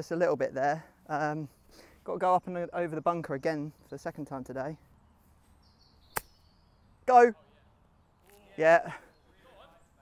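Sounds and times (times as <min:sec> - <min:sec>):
golf club striking ball: 0:06.1 - 0:06.4.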